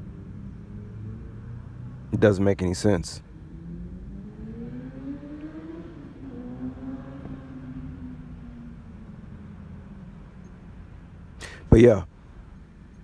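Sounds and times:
vehicle engine accelerating: 0.0 - 11.4.

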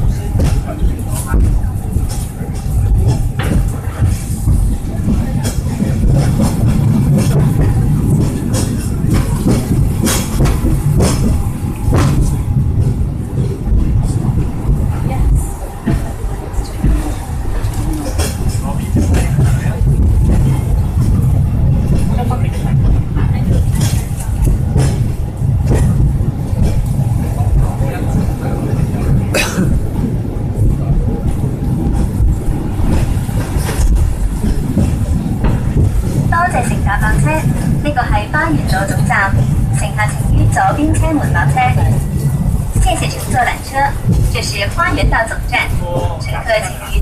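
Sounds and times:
passengers' voices: 0.0 - 47.0
rail clicks: 0.0 - 47.0
tram low rumble: 0.0 - 47.0.

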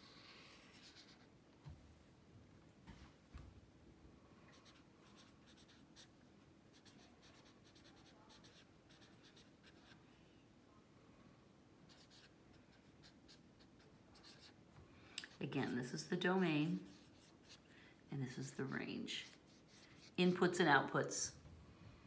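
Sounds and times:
pen scratching on paper: 0.6 - 1.3, 4.6 - 6.1, 6.7 - 10.0, 11.9 - 14.6, 16.8 - 17.6.

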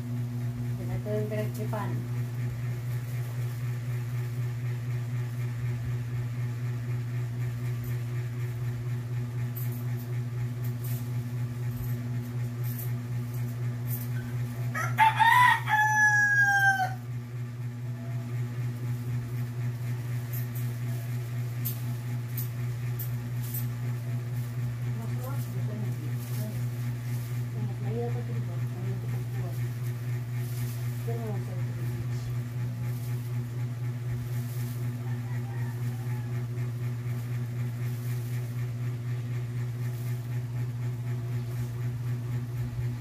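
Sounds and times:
steady low hum: 0.0 - 43.0
rooster crowing: 14.6 - 17.2, 34.8 - 36.9.

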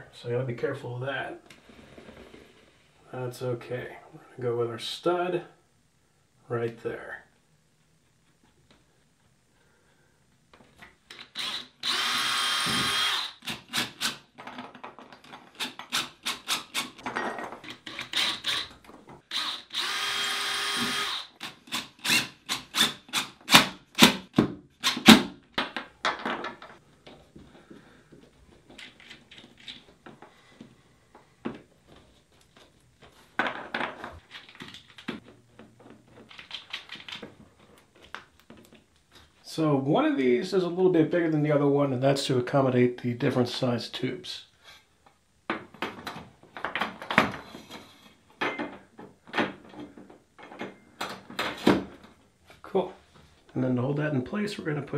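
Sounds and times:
cordless drill running: 11.2 - 14.1, 17.9 - 18.7, 19.3 - 23.2.

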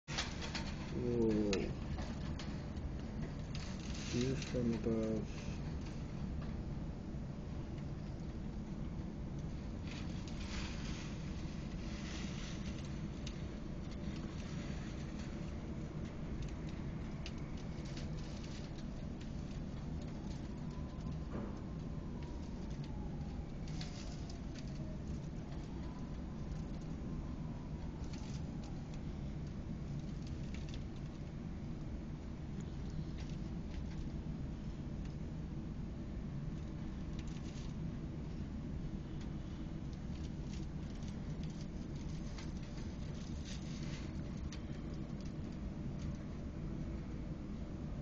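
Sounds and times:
steady low rumble: 0.0 - 48.0.

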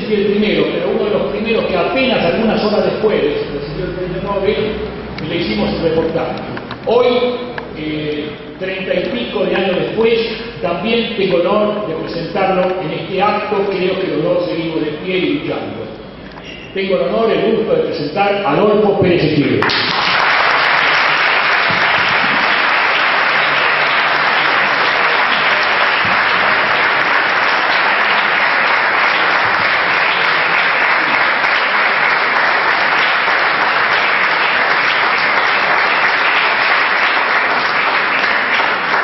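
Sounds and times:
audience applauding: 19.6 - 39.0.

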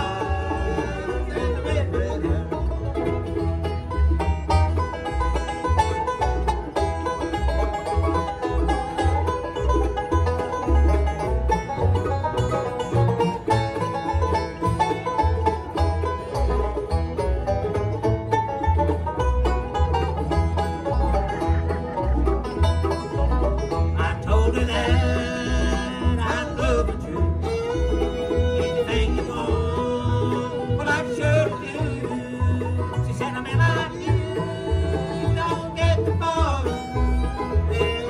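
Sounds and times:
acoustic guitar: 0.0 - 38.0
banjo: 0.0 - 38.0
fiddle: 0.0 - 38.0.

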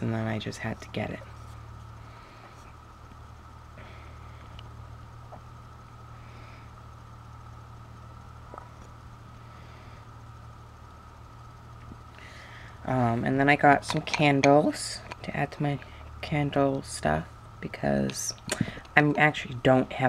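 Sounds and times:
faint high whine: 0.0 - 20.0
low hum: 0.0 - 20.0.

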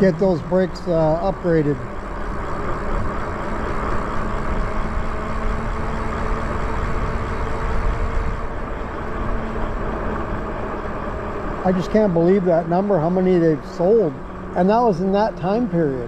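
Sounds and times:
electric bike motor hum: 0.0 - 16.0.

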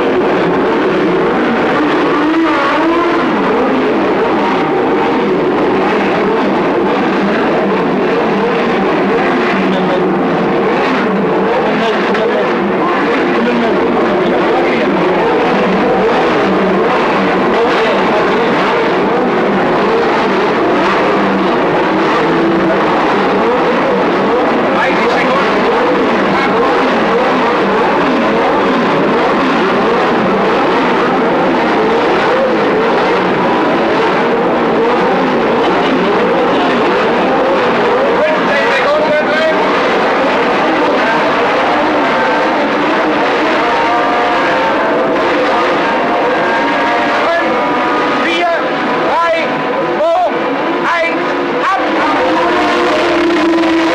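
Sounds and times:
racing engines revving: 0.0 - 53.9.

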